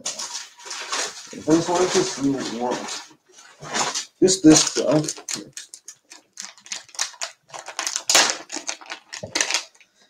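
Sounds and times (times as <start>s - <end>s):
clicking and rustling of handling: 4.6s - 7.8s.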